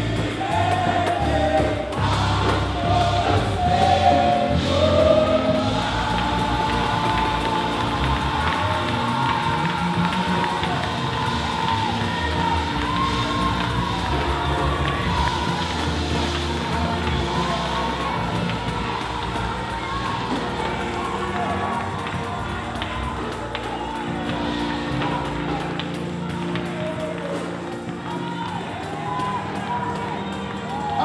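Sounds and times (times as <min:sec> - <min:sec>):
congregation singing gospel: 0:00.0 - 0:31.0
people shouting and cheering: 0:00.0 - 0:31.0.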